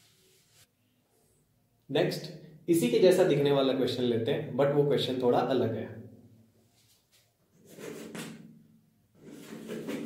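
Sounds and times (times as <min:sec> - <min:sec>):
chalk scratching on blackboard: 0:07.6 - 0:08.3, 0:09.2 - 0:10.0.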